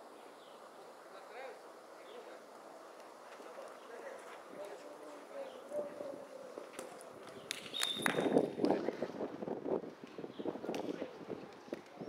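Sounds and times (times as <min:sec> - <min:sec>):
high whistle: 0:07.7 - 0:08.4.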